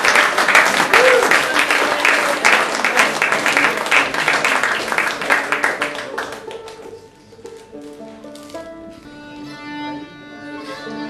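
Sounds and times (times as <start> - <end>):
audience applause: 0.0 - 7.0
fiddle bowed notes: 5.7 - 11.0.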